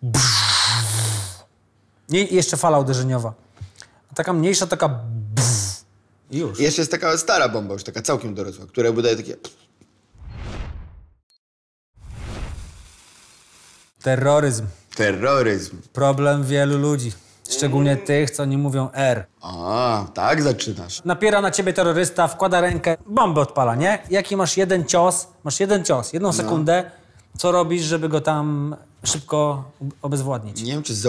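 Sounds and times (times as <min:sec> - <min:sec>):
man imitating explosion with voice: 0:00.0 - 0:01.4, 0:05.2 - 0:05.8
whoosh and rumble explosion: 0:10.2 - 0:11.2.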